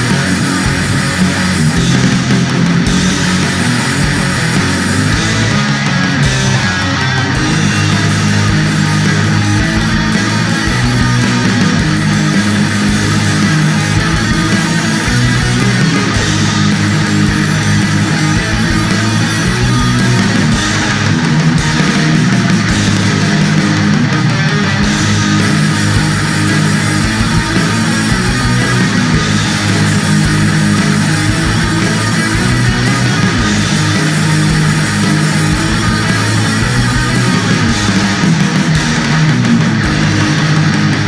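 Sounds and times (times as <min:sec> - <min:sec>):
bass guitar: 0:00.0 - 0:41.0
distorted electric guitar riffing: 0:00.0 - 0:41.0
fast pounding drums: 0:00.0 - 0:41.0.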